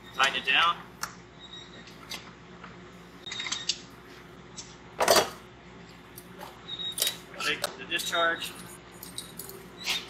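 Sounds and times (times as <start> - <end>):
metal hardware clicking and clattering: 9.0 - 9.6.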